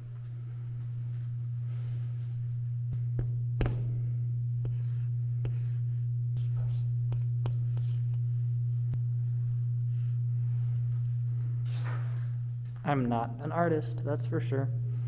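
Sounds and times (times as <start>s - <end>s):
steady low hum: 0.0s - 15.0s
chalk tapping on chalkboard: 4.6s - 5.8s
chalk scratching on chalkboard: 4.6s - 8.2s.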